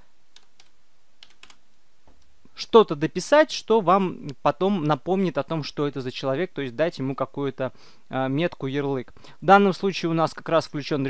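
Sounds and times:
computer keyboard keystrokes: 0:00.3 - 0:01.6.

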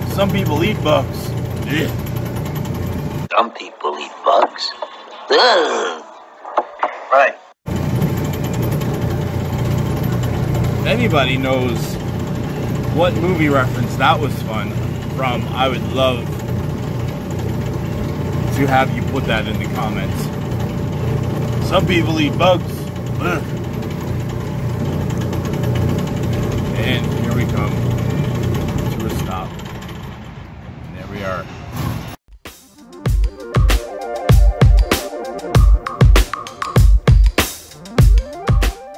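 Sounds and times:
ride car motor humming: 0:00.0 - 0:03.3, 0:07.7 - 0:30.7.

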